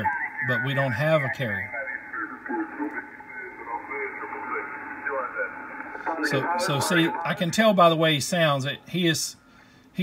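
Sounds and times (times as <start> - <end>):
man's voice over radio: 0.0 - 9.2.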